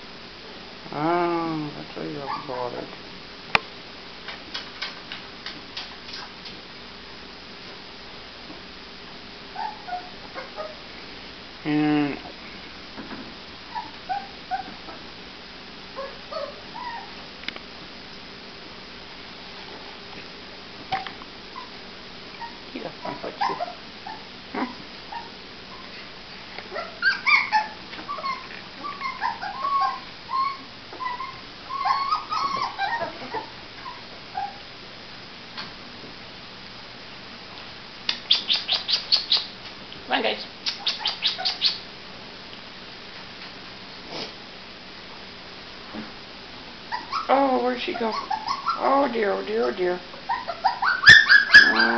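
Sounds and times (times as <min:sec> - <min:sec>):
puppy whimpering: 0:02.2 - 0:02.7, 0:09.5 - 0:10.8, 0:13.7 - 0:14.8, 0:16.0 - 0:17.2, 0:22.4 - 0:25.9, 0:26.7 - 0:34.6, 0:40.7 - 0:41.8, 0:46.9 - 0:51.9.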